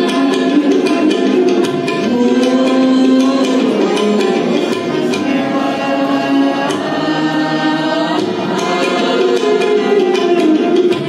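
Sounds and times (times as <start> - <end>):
harmonium: 0.0 - 11.0
tabla strokes: 0.0 - 11.0
men singing together: 2.0 - 10.3.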